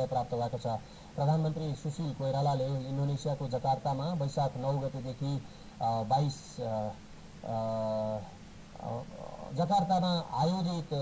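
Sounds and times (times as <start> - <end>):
faint high whine: 0.0 - 11.0
man speaking: 0.0 - 11.0.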